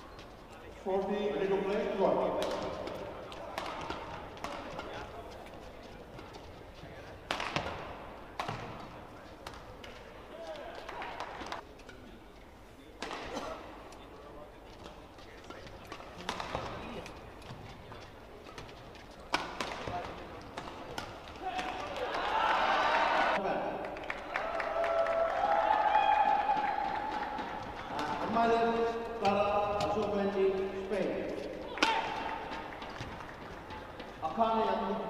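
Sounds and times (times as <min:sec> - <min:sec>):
rackets striking shuttlecock: 0:02.3 - 0:05.2, 0:07.2 - 0:10.0, 0:15.7 - 0:17.6, 0:18.5 - 0:22.0, 0:27.1 - 0:34.1.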